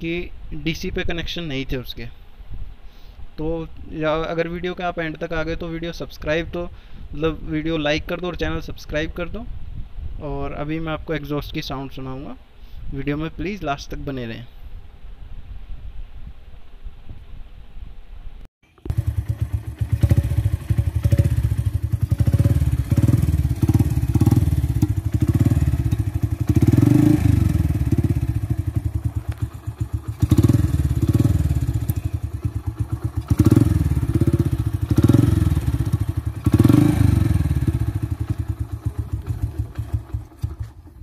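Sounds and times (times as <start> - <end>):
motorcycle engine revving: 18.8 - 41.0.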